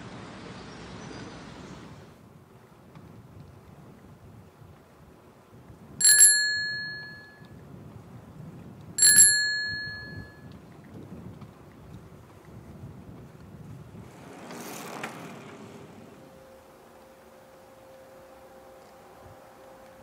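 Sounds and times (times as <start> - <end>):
faint low wind noise: 0.0 - 20.0
bicycle bell ding: 6.0 - 7.5, 9.0 - 10.4.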